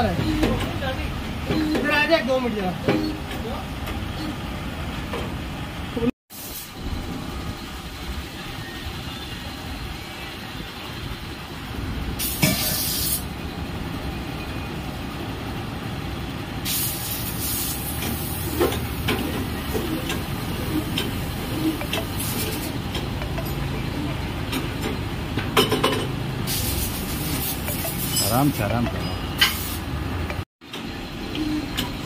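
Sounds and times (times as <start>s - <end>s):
air hissing: 12.2s - 13.3s, 16.6s - 22.8s, 26.4s - 28.6s
press machine running: 17.9s - 29.0s.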